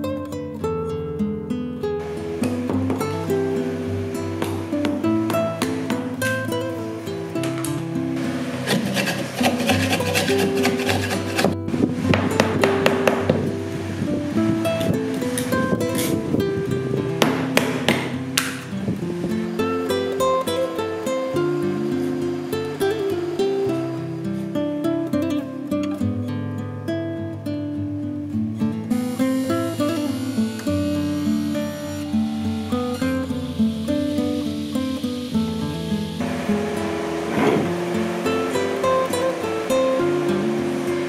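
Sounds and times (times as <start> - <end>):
acoustic guitar music: 0.0 - 41.0.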